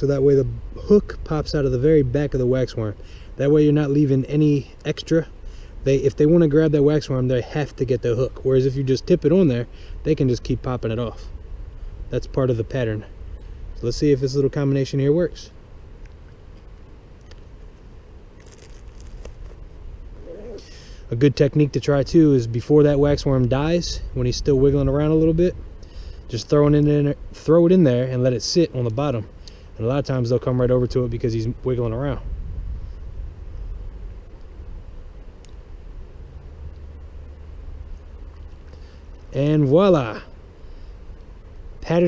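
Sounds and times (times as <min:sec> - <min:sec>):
faint hiss: 0:00.0 - 0:42.0
low steady rumble: 0:00.0 - 0:42.0.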